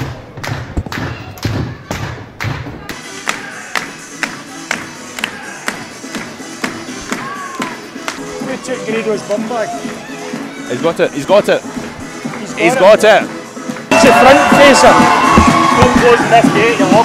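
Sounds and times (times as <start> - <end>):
music with heavy beat: 0.4 - 8.3, 13.7 - 17.0.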